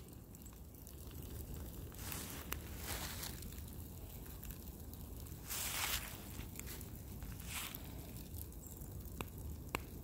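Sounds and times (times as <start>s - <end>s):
steady low rumble: 0.0s - 9.8s
fire crackling: 0.0s - 10.0s.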